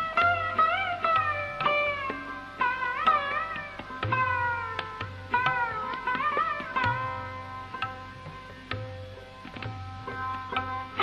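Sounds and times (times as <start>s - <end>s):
plucked sarod notes sliding: 0.0s - 11.0s
tabla bass strokes: 0.0s - 11.0s.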